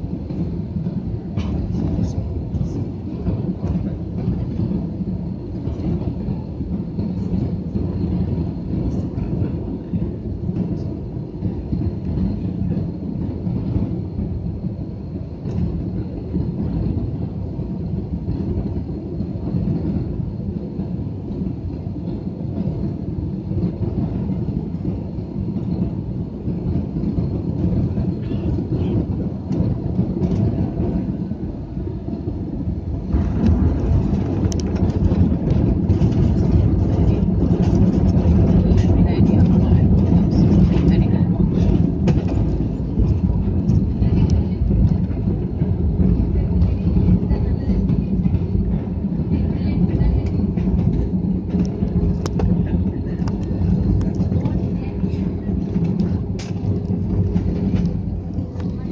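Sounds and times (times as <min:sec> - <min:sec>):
jet airliner cabin rumble: 0:00.0 - 0:58.9.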